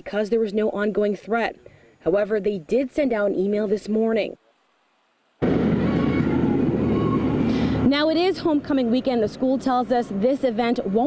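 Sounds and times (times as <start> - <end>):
outdoor rumble and hiss: 0.0 - 11.0.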